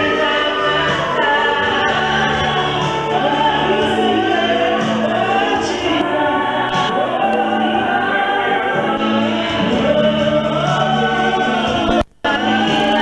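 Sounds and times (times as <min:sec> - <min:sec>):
backing voices singing: 0:00.0 - 0:13.0
woman singing into microphone: 0:00.0 - 0:13.0.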